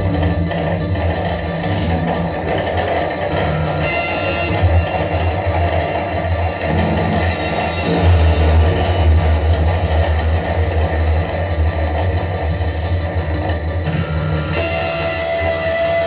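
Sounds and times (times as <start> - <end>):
heavy sustained bass: 0.0 - 16.0.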